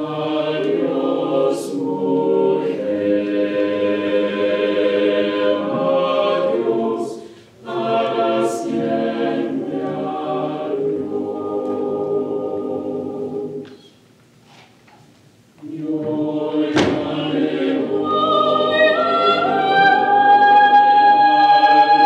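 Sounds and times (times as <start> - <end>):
choir singing a cappella: 0.0 - 14.0, 15.6 - 22.0.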